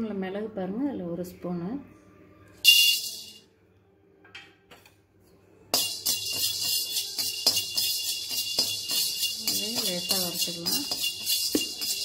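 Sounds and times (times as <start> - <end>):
peppercorns rattling into steel pan: 2.7 - 3.4, 5.7 - 12.0.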